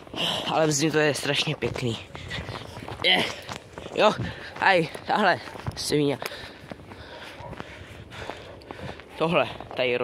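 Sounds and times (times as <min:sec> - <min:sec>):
footsteps on snow: 0:00.0 - 0:10.0.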